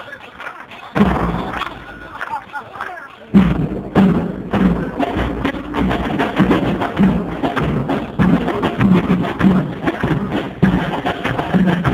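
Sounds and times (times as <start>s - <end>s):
crowd voices: 0.0s - 11.9s
large bass drum struck: 1.0s - 1.7s, 3.4s - 11.9s.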